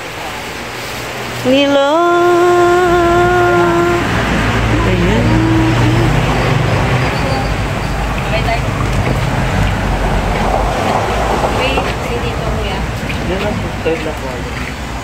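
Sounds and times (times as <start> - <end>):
faint voices: 0.0 - 15.0
traffic rumble: 0.0 - 15.0.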